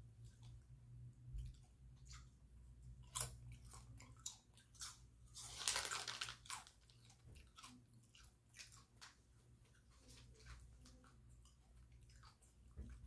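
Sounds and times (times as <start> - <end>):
person crunching corn chips: 4.8 - 7.0.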